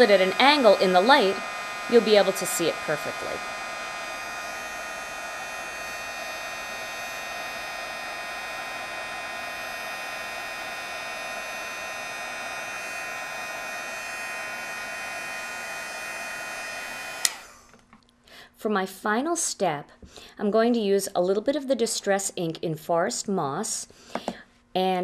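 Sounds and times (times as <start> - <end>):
heat tool blowing air with fan whine: 0.0 - 17.8
heat tool switch click: 17.2 - 17.4.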